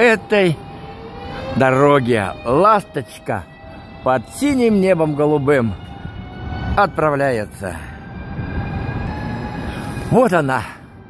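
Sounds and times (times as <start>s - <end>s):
train rumbling: 0.0s - 11.0s.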